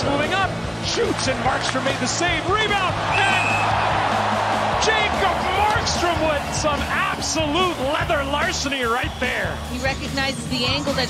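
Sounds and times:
arena crowd noise: 0.0s - 11.0s
background music: 0.0s - 11.0s.

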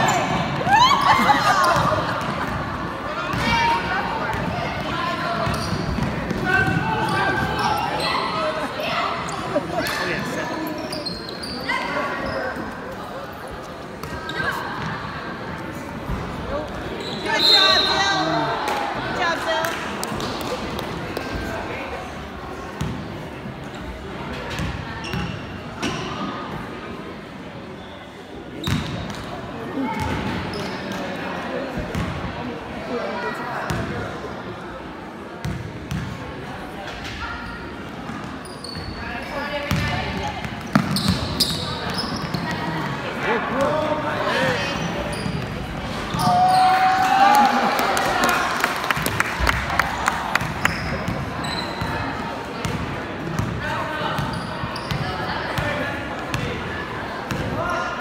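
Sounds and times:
crowd chatter: 0.0s - 58.0s.

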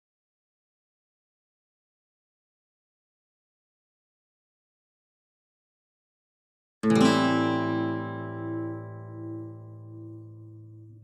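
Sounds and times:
acoustic guitar chord ringing: 6.8s - 11.0s.

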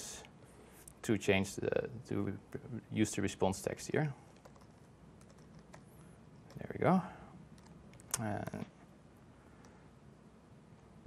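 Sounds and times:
laptop keyboard typing: 4.4s - 6.7s, 7.5s - 8.1s.

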